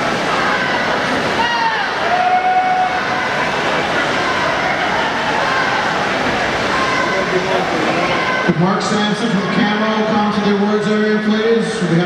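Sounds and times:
swimmers splashing: 0:00.0 - 0:10.6
spectators' voices: 0:00.0 - 0:12.0.

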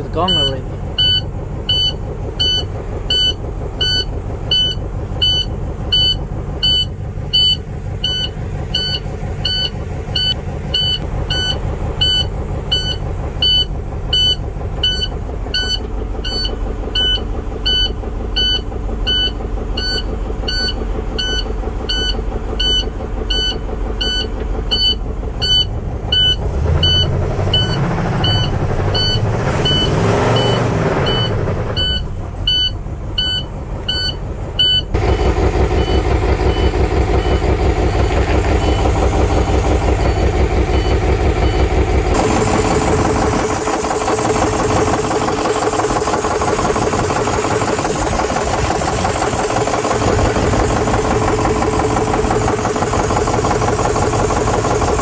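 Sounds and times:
diesel engine running and revving: 0:00.0 - 0:55.0
warning alarm beeping: 0:00.1 - 0:43.3.

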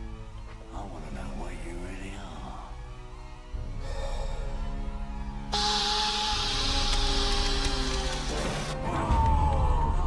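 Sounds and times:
background music with held notes: 0:00.0 - 0:10.0
gas hissing from a vent: 0:05.6 - 0:08.6.

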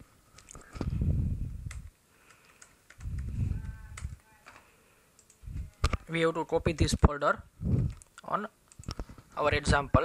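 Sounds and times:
computer mouse clicking: 0:01.6 - 0:06.0, 0:07.8 - 0:09.2
soft low muffled sound: 0:02.9 - 0:08.0.

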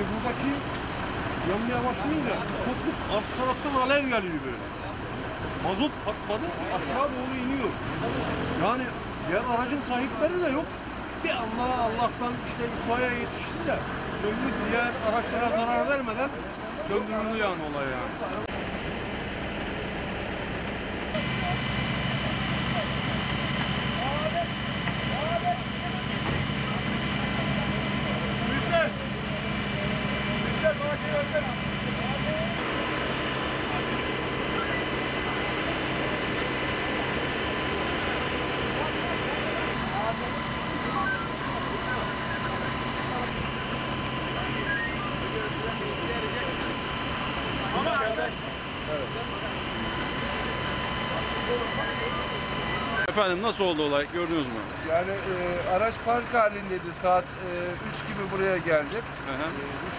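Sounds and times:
fire truck engine running: 0:00.0 - 0:59.9
indistinct voices: 0:21.1 - 0:56.1.

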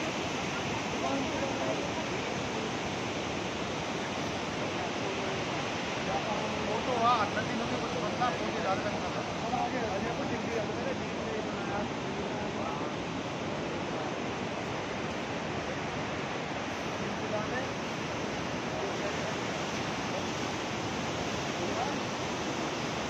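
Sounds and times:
river rushing over rocks: 0:00.0 - 0:23.0.

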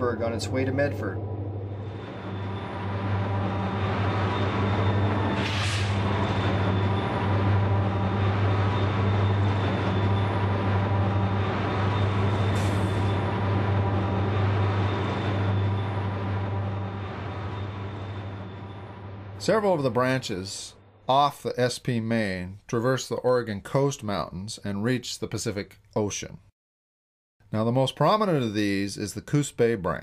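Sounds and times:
diesel locomotive engines droning: 0:00.0 - 0:21.1.

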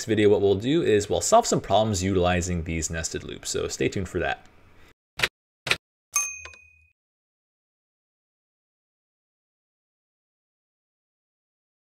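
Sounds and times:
bright bell-like ding: 0:06.2 - 0:06.9.

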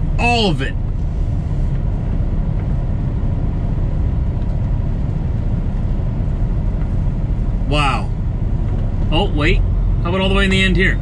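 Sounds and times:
diesel truck engine rumble: 0:00.0 - 0:11.0.

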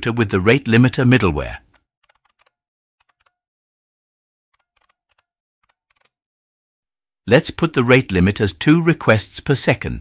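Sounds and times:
keyboard typing: 0:02.0 - 0:03.4.

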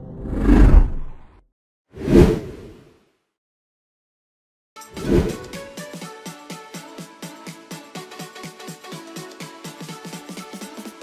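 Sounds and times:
whoosh sound effect: 0:00.0 - 0:01.3.

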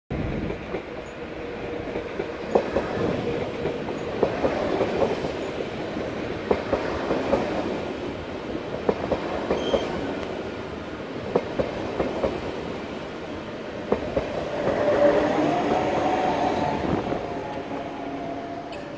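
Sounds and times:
train wheels clicking over rail joints: 0:00.2 - 0:07.7
train brakes squealing: 0:09.5 - 0:10.1.

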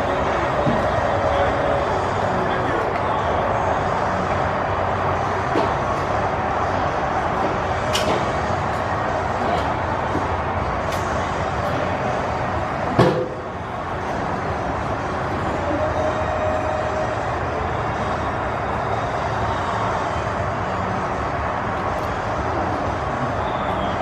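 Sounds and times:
ballpark background noise: 0:00.0 - 0:24.0.

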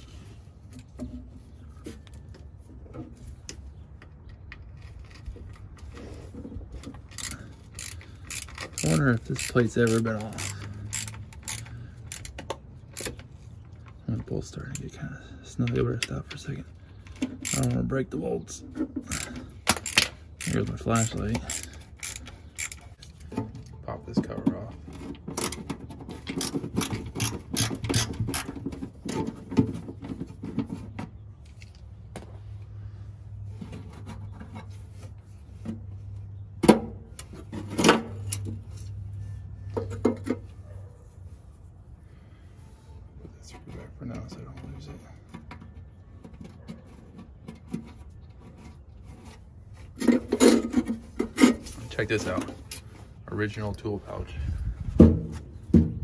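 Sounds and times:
tools clicking and scraping metal: 0:03.4 - 0:17.9, 0:18.8 - 0:30.9.

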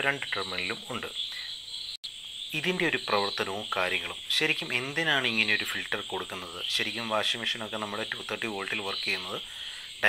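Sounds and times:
man talking: 0:00.0 - 0:01.5, 0:02.5 - 0:10.0
high-pitched chirring hum: 0:00.0 - 0:10.0.

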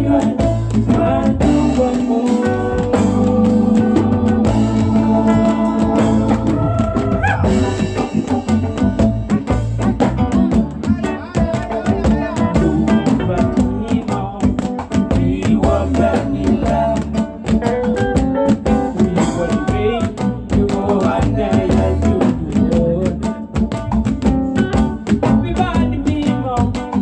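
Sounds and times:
man singing lead vocal: 0:00.0 - 0:08.8, 0:10.2 - 0:27.0
bass guitar: 0:00.0 - 0:27.0
drums with steady beat: 0:00.0 - 0:27.0
electric guitar: 0:00.0 - 0:27.0.

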